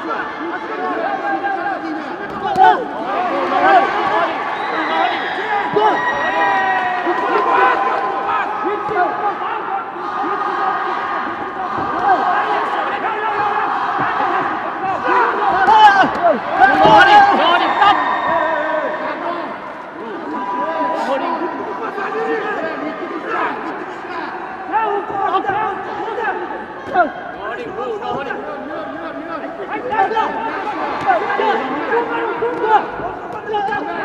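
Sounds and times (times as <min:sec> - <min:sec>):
crowd shouting and cheering: 0:00.0 - 0:34.0.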